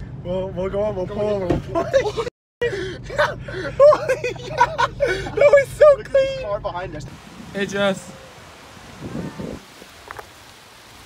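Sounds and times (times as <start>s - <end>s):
wind buffeting microphone: 7.0s - 10.4s
faint surf on rocks: 7.1s - 11.0s.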